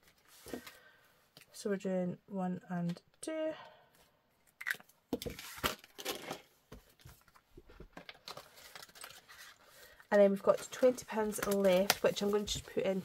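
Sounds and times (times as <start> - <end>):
plastic pockets clicking and crinkling: 4.7 - 9.6, 10.4 - 13.0
paper rustling: 5.2 - 13.0.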